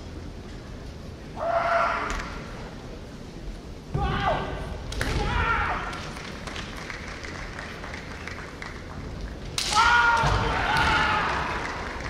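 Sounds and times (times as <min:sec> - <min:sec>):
loud high shout: 0:04.0 - 0:06.0, 0:09.6 - 0:12.0.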